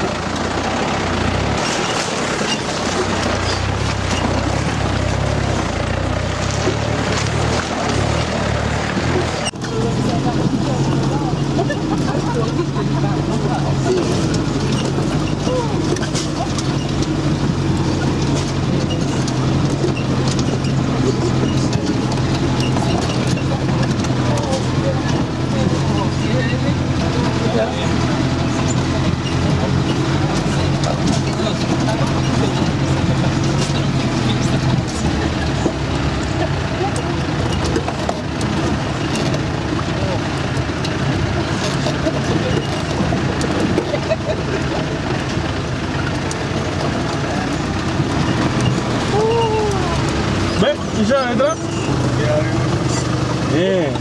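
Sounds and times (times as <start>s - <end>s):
vehicle engine from inside cabin: 0.0s - 54.0s.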